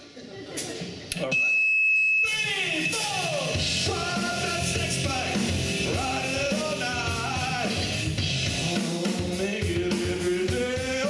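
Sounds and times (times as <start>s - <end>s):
live metal band playing: 2.4s - 11.0s
heavy drums and bass: 2.9s - 11.0s.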